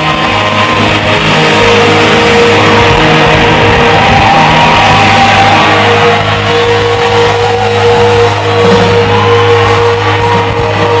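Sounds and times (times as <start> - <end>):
rock band with electric guitars: 0.0 - 11.0.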